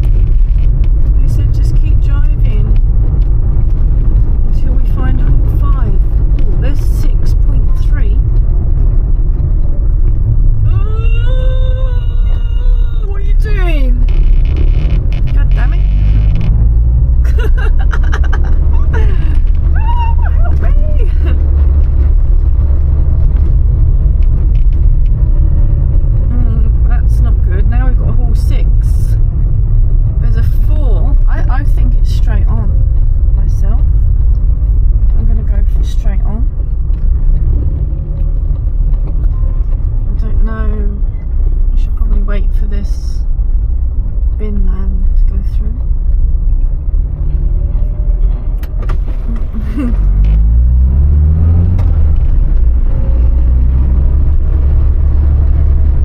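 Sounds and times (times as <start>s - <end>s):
car engine drone from cabin: 0.0s - 56.0s.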